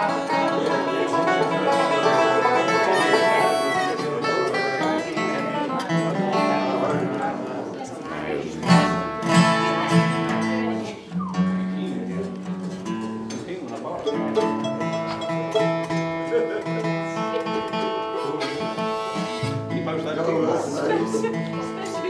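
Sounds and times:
acoustic guitar and banjo picking: 0.0s - 22.0s
loud guitar strums: 8.6s - 11.6s, 14.5s - 19.9s.

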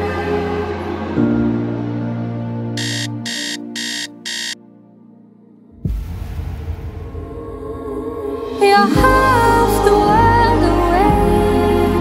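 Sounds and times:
alarm clock beeping: 2.8s - 4.6s.

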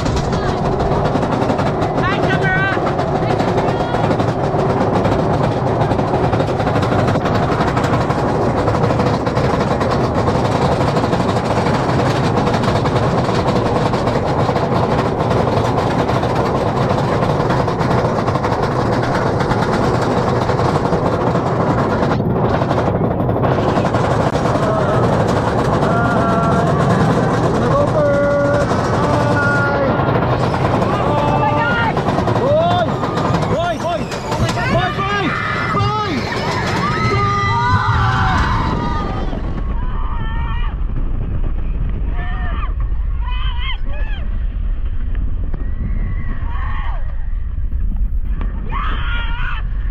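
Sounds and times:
roller coaster rumbling on track: 0.0s - 49.9s
wind buffeting microphone: 0.0s - 49.9s
riders' voices: 23.0s - 37.8s.

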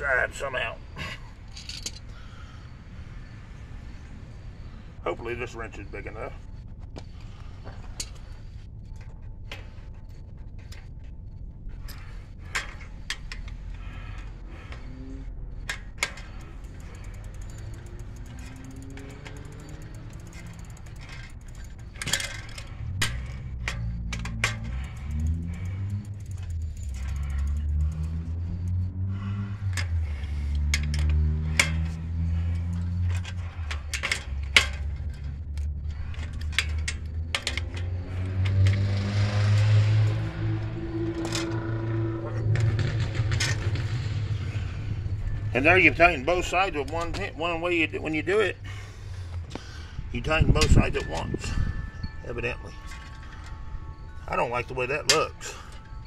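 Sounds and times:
low drone shifting pitch: 3.8s - 56.0s.

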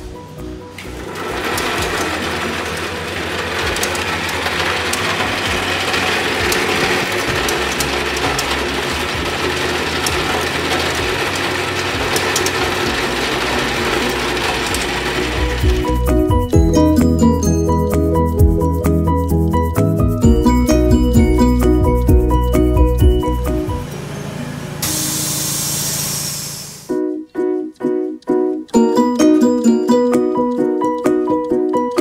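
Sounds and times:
music: 0.0s - 24.0s, 26.9s - 32.0s
grading machine running: 0.0s - 26.9s
nuts rattling on metal: 0.9s - 16.6s.

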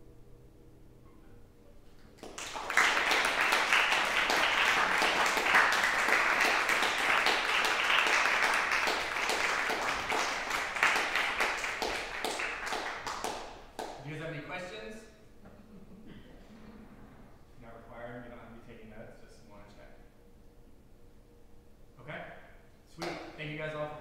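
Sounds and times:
audience applauding: 2.2s - 14.0s.

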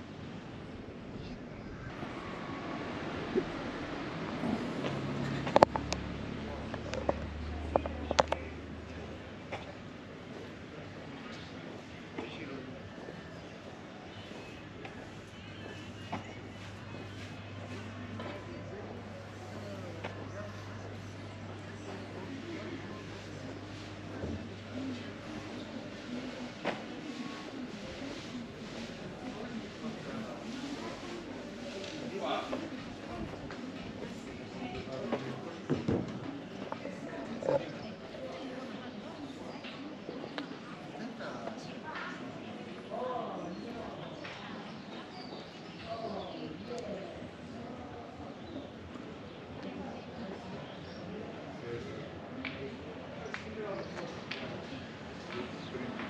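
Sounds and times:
faint indistinct voices: 0.0s - 56.0s.

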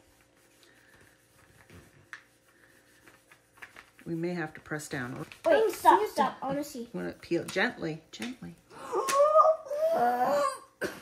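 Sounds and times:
burnisher rubbing transfer sheet: 0.0s - 7.6s.

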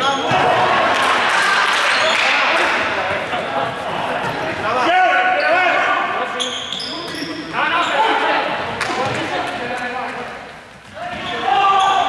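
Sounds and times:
sneakers squeaking on floor: 0.0s - 0.6s, 1.8s - 2.5s, 3.6s - 4.6s, 5.3s - 9.4s, 10.8s - 12.0s
players calling out: 0.0s - 10.0s, 10.8s - 12.0s.

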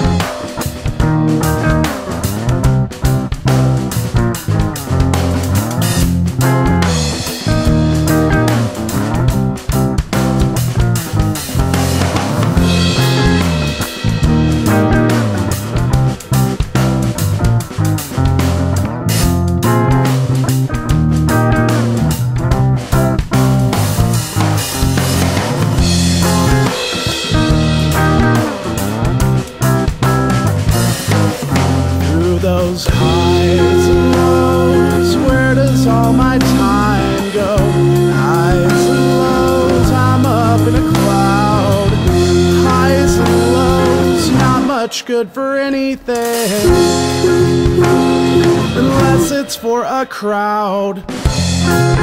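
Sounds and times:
acoustic rock instrumental: 0.0s - 52.0s.

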